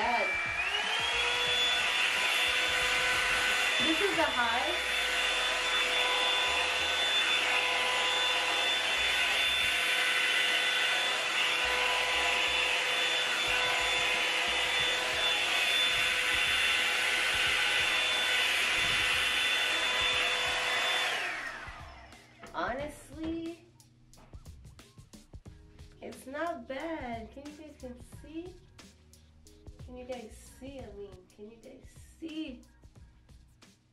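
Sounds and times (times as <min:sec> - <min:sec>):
motor spinning down: 0:00.0 - 0:22.3
hair dryer brush running: 0:00.0 - 0:23.4.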